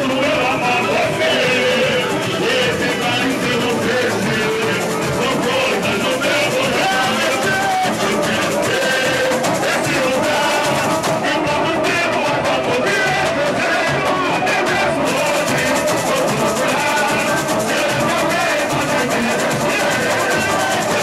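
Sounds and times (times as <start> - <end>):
person singing into a microphone: 0.0 - 21.0
samba drum section playing: 0.0 - 21.0
surdo bass drums: 0.0 - 21.0.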